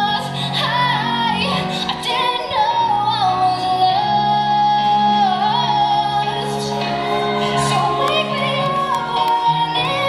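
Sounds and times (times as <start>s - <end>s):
high singing voice: 0.0s - 10.0s
musical backing: 0.0s - 10.0s.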